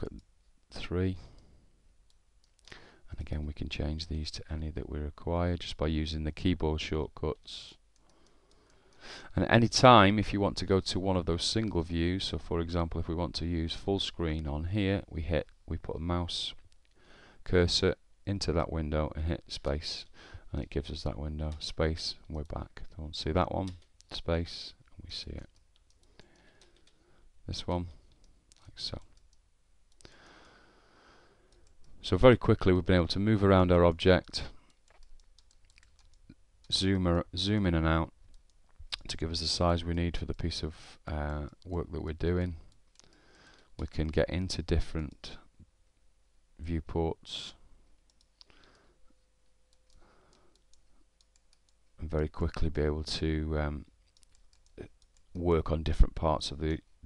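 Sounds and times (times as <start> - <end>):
man speaking: 0.0 - 1.3, 9.3 - 16.6, 17.4 - 25.5, 27.4 - 28.0, 28.6 - 29.1, 32.0 - 34.6, 36.7 - 38.2, 38.9 - 42.7, 43.8 - 45.5, 46.6 - 47.6, 52.0 - 53.9, 54.8 - 56.9
faint clicks: 2.1 - 2.8, 7.3 - 9.1, 24.8 - 27.0, 28.0 - 30.6, 31.5 - 32.0, 34.2 - 36.8, 42.6 - 44.3, 47.8 - 52.7, 53.9 - 55.4.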